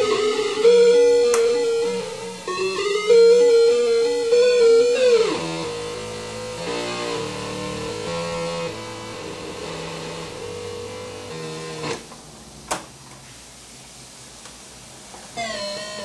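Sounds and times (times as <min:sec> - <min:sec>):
glitched electronic toy tones: 0:15.4 - 0:16.0.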